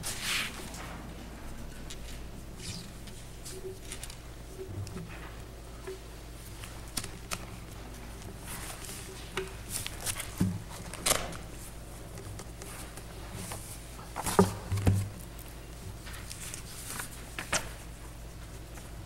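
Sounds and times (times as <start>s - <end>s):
papers rustling: 1.6s - 5.4s, 6.4s - 18.9s.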